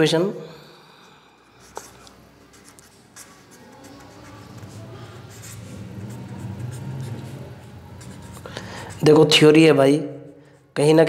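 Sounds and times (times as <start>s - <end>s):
pen scratching on paper: 1.6s - 9.4s.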